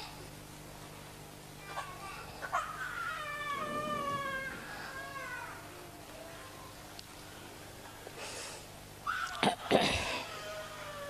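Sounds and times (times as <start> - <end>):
high-pitched drawn-out vocal cry: 1.6 - 6.8, 9.0 - 11.0.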